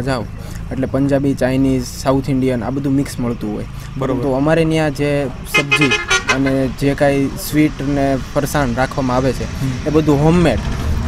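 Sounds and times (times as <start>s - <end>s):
man speaking: 5.5s - 6.9s.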